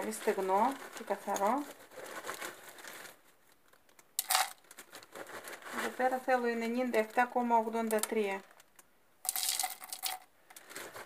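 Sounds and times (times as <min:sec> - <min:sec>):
flakes rustling: 0:00.0 - 0:08.6, 0:09.3 - 0:11.0
flakes pouring into plastic bowl: 0:04.2 - 0:04.6, 0:09.3 - 0:10.2.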